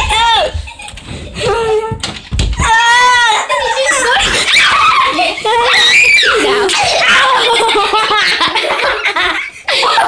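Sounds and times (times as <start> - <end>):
girls screaming: 2.6 - 7.7.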